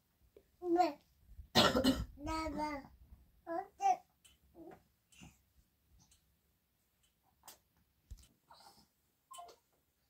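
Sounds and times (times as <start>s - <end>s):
person coughing: 1.6s - 2.1s
toddler babbling: 2.2s - 2.9s, 3.5s - 4.8s.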